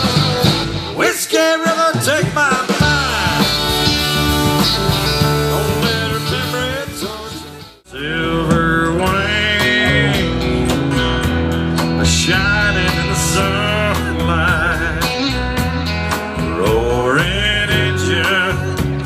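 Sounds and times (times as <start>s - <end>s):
bending electric guitar lines: 0.0s - 19.0s
live country band: 0.0s - 19.0s.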